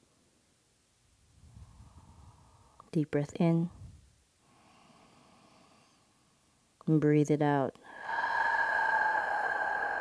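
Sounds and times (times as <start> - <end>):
faint deep breath in: 1.4 - 2.9, 4.4 - 6.5, 7.8 - 10.0.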